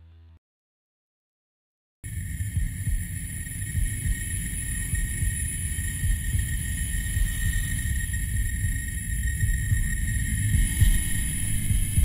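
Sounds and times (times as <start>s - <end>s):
low rumbling drone: 2.1s - 12.0s.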